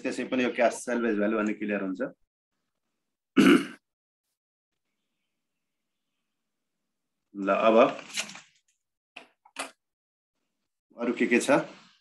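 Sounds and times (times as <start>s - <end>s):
man clearing throat: 3.4s - 3.8s.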